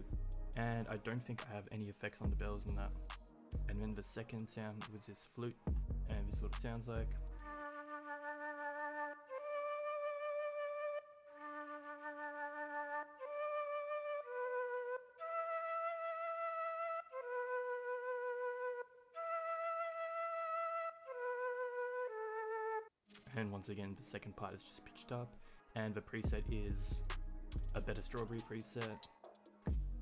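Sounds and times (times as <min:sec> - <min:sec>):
software flute melody: 0:00.0 - 0:22.9, 0:26.3 - 0:30.0.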